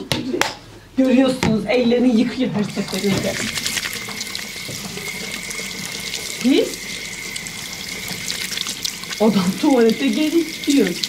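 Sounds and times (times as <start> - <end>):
hands washing under water: 2.6 - 11.0
tap water running into sink: 2.6 - 11.0.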